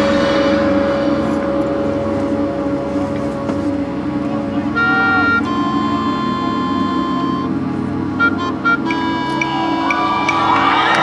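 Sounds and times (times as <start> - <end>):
bright high sustained chord: 0.0 - 11.0
marching band sustained chord: 0.0 - 11.0.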